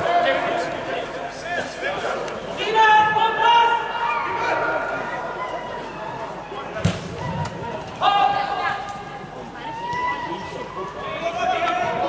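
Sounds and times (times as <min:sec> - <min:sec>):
chatter and calls in hall: 0:00.0 - 0:12.0
football kick thump: 0:06.8 - 0:07.4.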